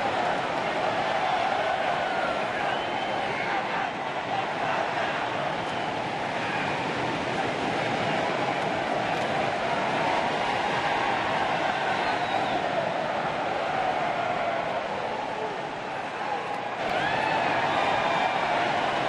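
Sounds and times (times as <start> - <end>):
crowd hubbub: 0.0 - 19.0.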